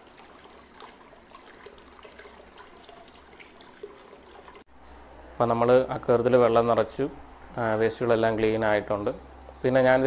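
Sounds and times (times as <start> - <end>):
aquarium water trickling and bubbling: 0.0 - 4.7.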